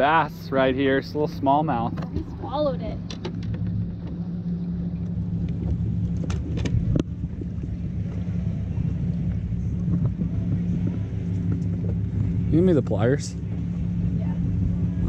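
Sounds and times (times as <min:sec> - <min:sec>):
outboard motor idling: 0:00.0 - 0:15.0.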